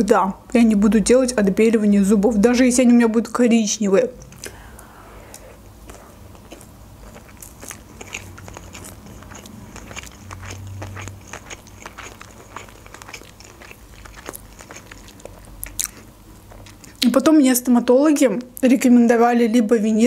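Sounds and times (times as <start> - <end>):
chewing with mouth clicks and crunches: 5.8 - 17.3.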